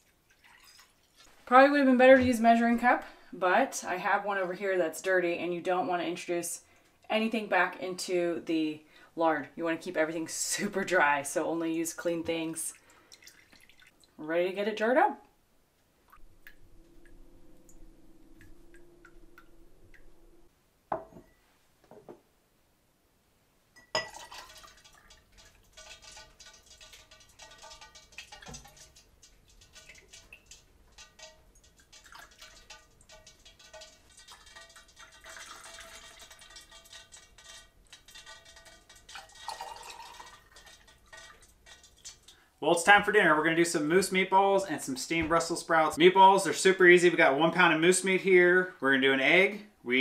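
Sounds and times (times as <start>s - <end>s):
liquid fat dripping through strainer: 0.0s - 1.4s, 12.6s - 14.2s, 16.0s - 20.2s, 23.8s - 44.2s.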